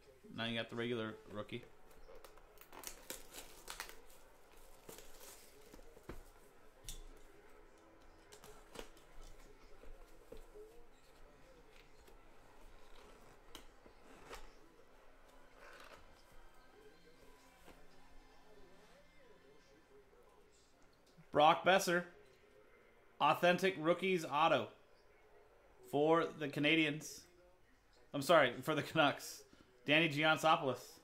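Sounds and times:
plastic wrap tearing and crinkling: 0:02.1 - 0:05.8.

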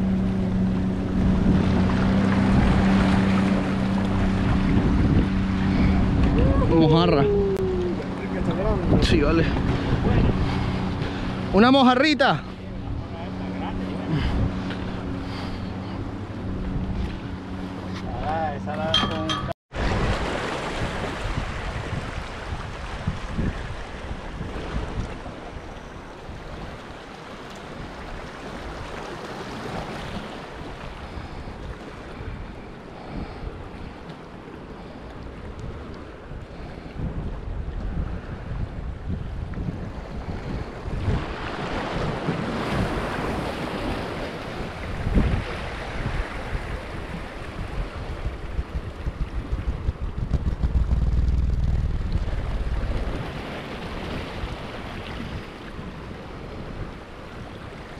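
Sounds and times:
wind buffeting microphone: 0:00.0 - 0:27.0, 0:34.9 - 0:57.9
small waves washing against rocks: 0:41.0 - 0:56.6
steady low hum: 0:47.7 - 0:54.8.

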